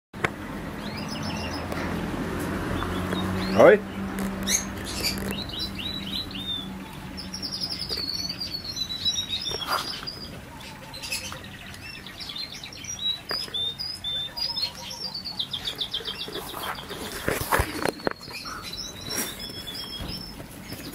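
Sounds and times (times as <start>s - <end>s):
birds chirping and twittering: 0.2s - 20.9s.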